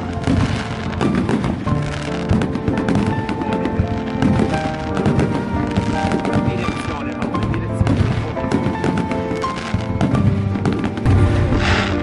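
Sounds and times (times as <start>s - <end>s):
fireworks banging: 0.0s - 12.0s
music of held notes: 0.0s - 12.0s.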